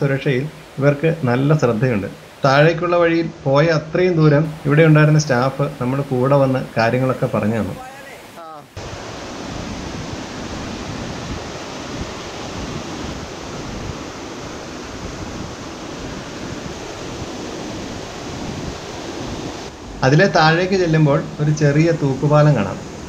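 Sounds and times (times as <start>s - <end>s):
stream water rushing: 0.0s - 23.0s.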